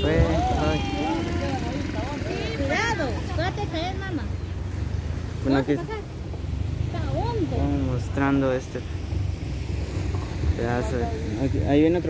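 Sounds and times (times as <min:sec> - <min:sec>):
car engine rumble and road noise: 0:00.0 - 0:12.0.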